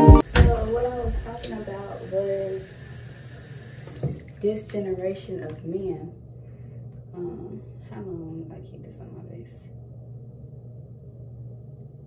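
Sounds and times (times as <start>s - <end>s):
water running from sink tap: 0.2s - 4.8s.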